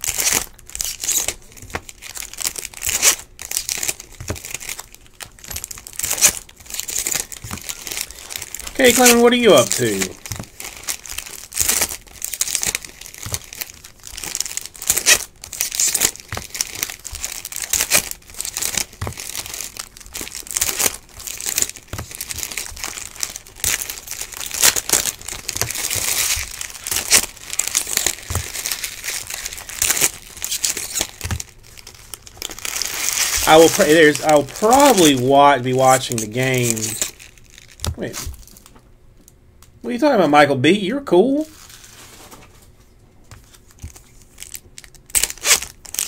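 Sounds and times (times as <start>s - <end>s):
card pack wrappers crinkling and tearing: 0.0s - 39.4s, 41.3s - 42.5s, 43.3s - 46.0s.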